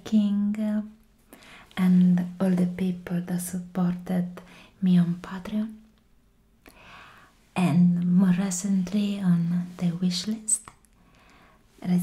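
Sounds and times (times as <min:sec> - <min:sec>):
woman talking softly: 0:07.6 - 0:10.7.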